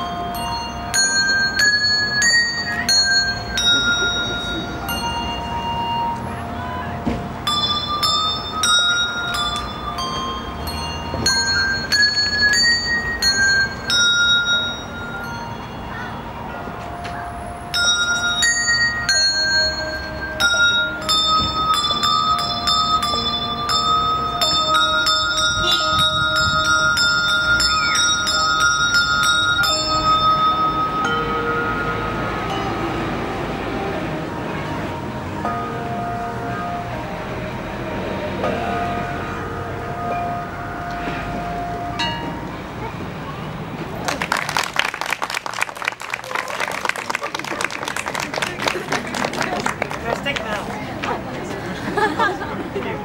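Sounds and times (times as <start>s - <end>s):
handbell ensemble melody: 0.0s - 53.0s.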